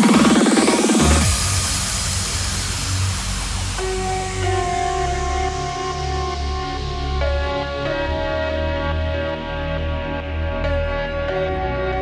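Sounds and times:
low bass drone: 0.0 - 12.0
synth pad chords: 0.0 - 12.0.

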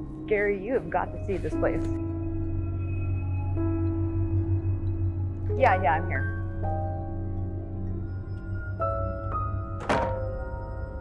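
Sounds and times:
soft background music: 0.0 - 11.0
wooden door thudding shut: 9.8 - 10.4.

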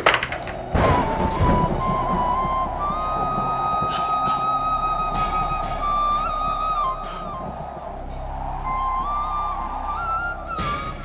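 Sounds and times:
flute playing slow melody: 0.8 - 11.0.

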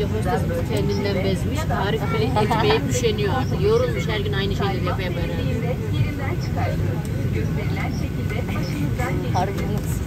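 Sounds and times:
airliner cabin hum: 0.0 - 10.0
voice over public-address speakers: 0.0 - 10.0.

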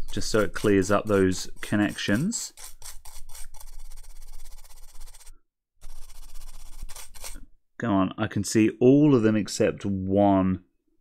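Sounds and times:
toothbrush scrubbing circuit board: 0.0 - 7.4.

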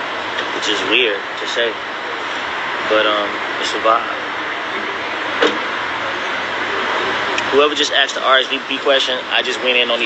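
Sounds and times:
rushing outdoor background noise: 0.0 - 10.0.

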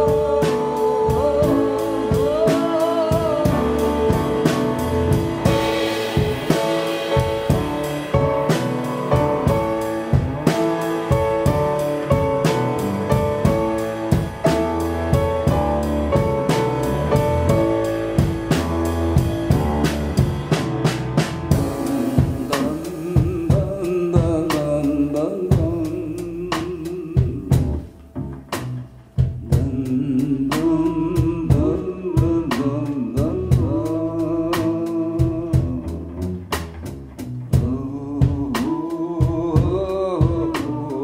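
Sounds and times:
drum kit beat: 0.0 - 41.0
piano: 0.0 - 41.0
upright double bass: 0.0 - 41.0.

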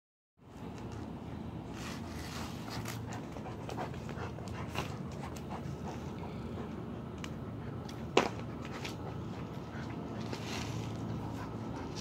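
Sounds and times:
dog panting: 2.6 - 12.0.

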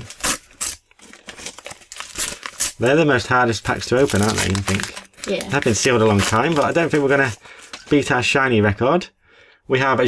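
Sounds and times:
foil wrapper tearing and crinkling: 0.0 - 7.9.

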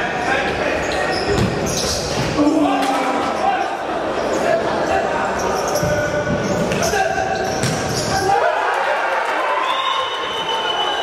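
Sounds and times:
ball bouncing on hard court: 1.3 - 2.3, 7.5 - 8.1.

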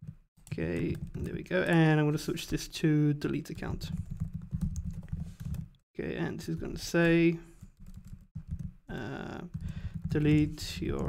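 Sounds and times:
typing on computer keyboard: 3.8 - 5.7, 7.6 - 8.8, 9.4 - 10.5.

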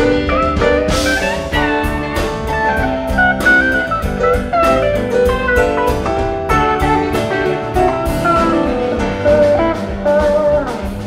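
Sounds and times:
drum kit: 0.0 - 11.0
electric bass: 0.0 - 11.0
guitars: 0.0 - 11.0
keyboards: 0.0 - 11.0
pitch-bending lead melody: 0.0 - 11.0.

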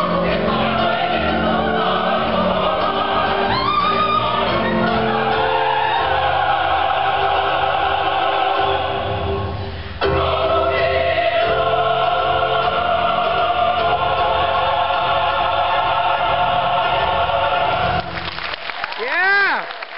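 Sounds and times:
mixed choir singing folk song: 0.0 - 18.4
applause: 18.0 - 19.9.

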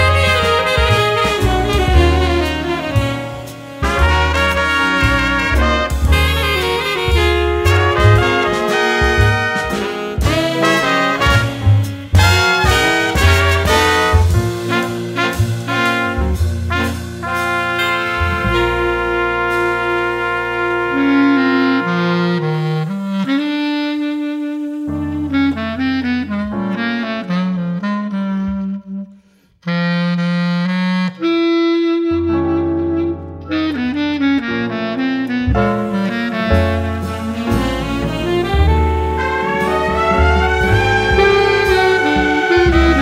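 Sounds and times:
low bass notes: 0.0 - 23.4, 24.6 - 29.1, 32.0 - 43.0
saxophones and brass playing chords: 0.0 - 28.6, 29.7 - 43.0.

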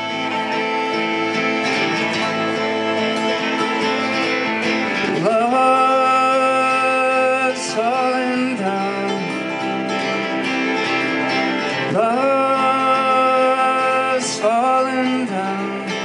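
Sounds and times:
folk country accompaniment: 0.0 - 16.0
harmonica playing: 0.0 - 16.0.

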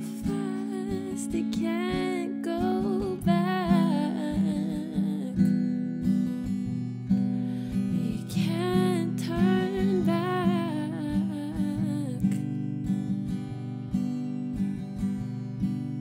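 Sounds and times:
person singing wordless melody: 0.0 - 5.5, 8.0 - 12.4
acoustic guitar picking: 0.0 - 16.0.

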